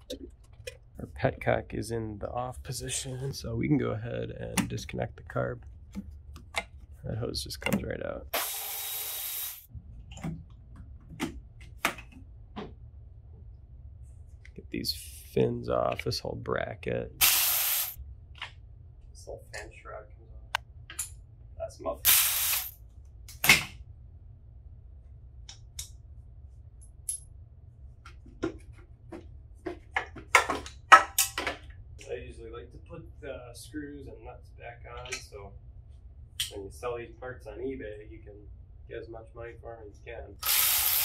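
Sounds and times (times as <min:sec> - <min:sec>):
tools and parts clicking and knocking: 0:26.8 - 0:27.2, 0:29.7 - 0:31.8.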